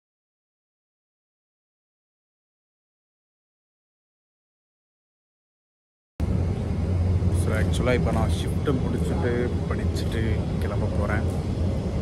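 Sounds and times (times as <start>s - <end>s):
low outdoor rumble: 6.2s - 12.0s
man speaking: 7.4s - 11.4s.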